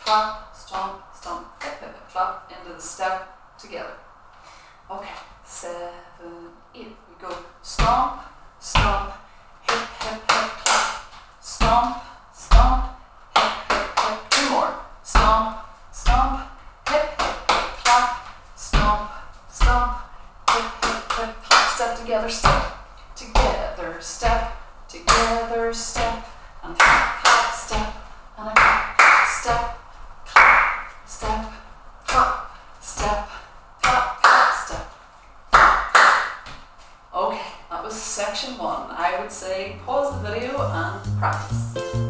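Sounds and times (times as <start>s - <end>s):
woman calling: 39.4s - 41.7s.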